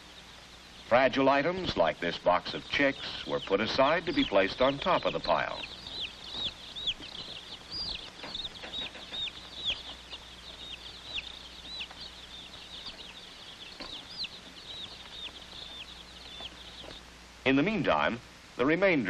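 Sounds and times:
baby chicks peeping: 0:00.0 - 0:18.8.

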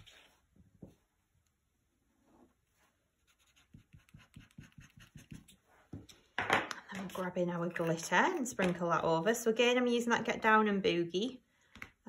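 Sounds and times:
glue pen scratching on paper: 0:03.2 - 0:05.6
woman speaking: 0:06.9 - 0:11.4.

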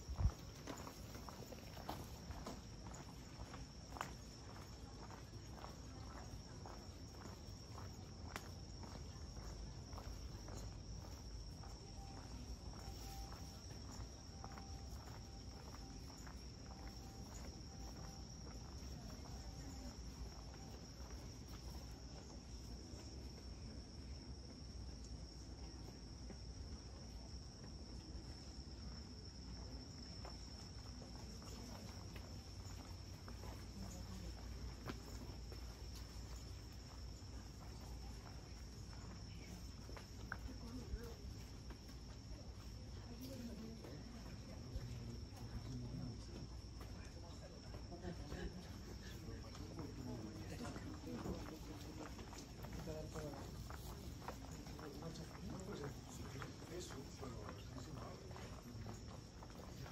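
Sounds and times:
footsteps on pavement: 0:00.0 - 0:23.4, 0:27.4 - 0:59.9
insects chirping: 0:00.0 - 0:59.9.

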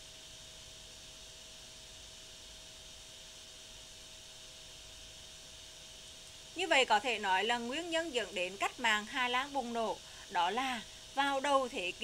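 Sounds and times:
background hiss: 0:00.0 - 0:12.0
faint steady hum: 0:00.0 - 0:12.0.

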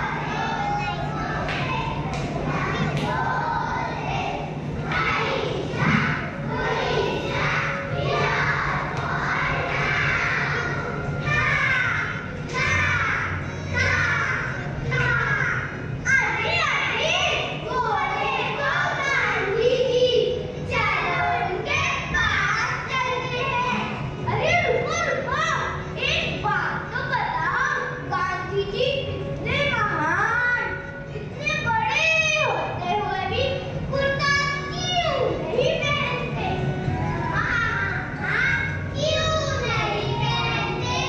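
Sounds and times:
children calling out in chorus: 0:00.0 - 0:20.1
low steady hum: 0:00.0 - 0:41.0.

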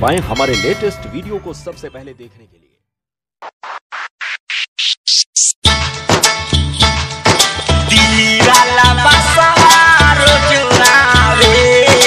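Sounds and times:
stuttering electronic noise bursts: 0:03.4 - 0:05.6.

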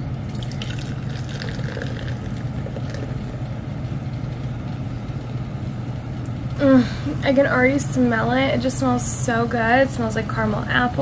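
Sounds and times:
liquid pouring into glass: 0:00.2 - 0:03.6.

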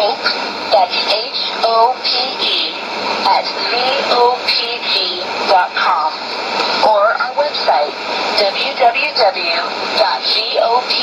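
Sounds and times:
shortwave band noise hiss: 0:00.0 - 0:11.0
radio announcer speaking: 0:06.7 - 0:07.9.

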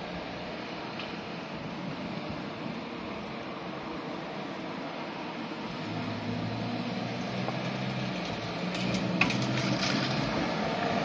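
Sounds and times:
car engines in street traffic: 0:00.0 - 0:11.0.

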